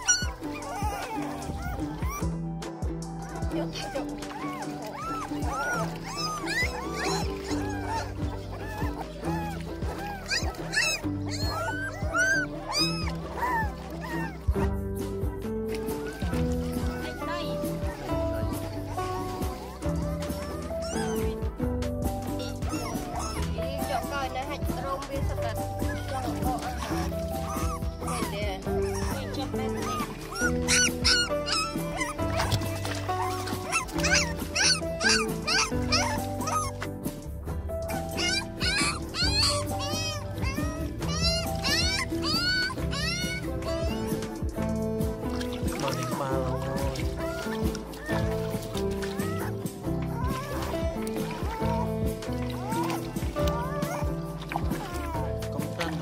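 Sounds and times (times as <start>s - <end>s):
background music with steady beat: 0.0s - 56.0s
puppies whimpering and yelping: 0.0s - 56.0s.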